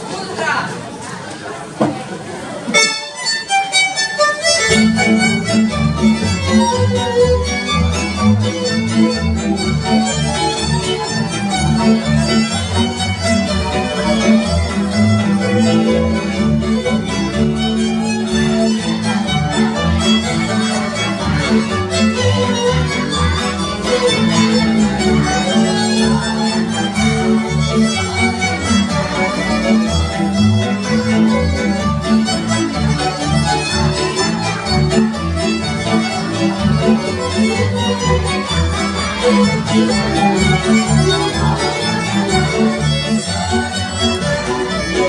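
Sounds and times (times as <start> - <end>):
bowed string accompaniment: 2.4 - 45.0
fiddle melody: 2.6 - 45.0
bass line: 4.5 - 45.0.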